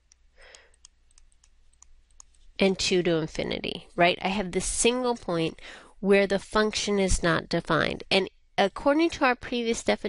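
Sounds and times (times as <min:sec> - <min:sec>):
stylus tapping on tablet screen: 0:00.0 - 0:02.6.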